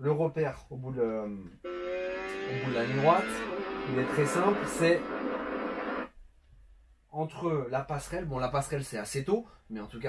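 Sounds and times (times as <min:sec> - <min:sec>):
motorcycle video from television speaker: 0:01.6 - 0:06.1.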